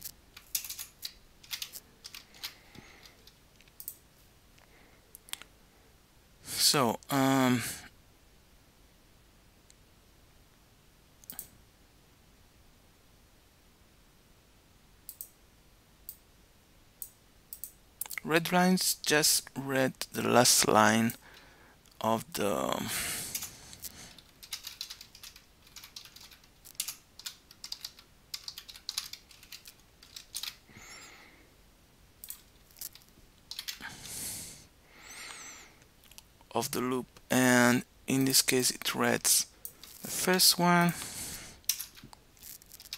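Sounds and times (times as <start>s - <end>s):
computer keyboard typing: 0.4s - 4.0s, 23.3s - 23.5s, 24.2s - 30.6s, 32.2s - 33.9s, 41.7s - 42.1s.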